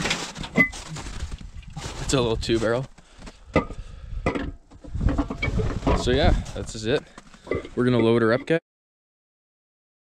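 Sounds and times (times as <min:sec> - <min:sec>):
footsteps crunching in snow: 0:00.0 - 0:03.5, 0:05.5 - 0:07.9.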